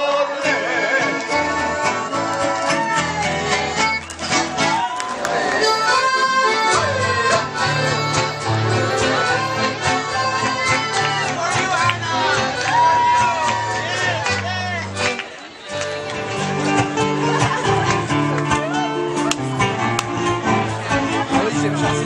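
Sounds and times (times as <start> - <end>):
accordion melody: 0.0 - 22.0
strummed acoustic guitars: 0.0 - 22.0.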